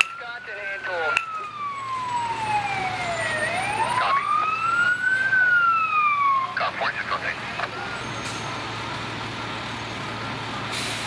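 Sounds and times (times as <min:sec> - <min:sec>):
siren wailing: 0:00.0 - 0:08.2.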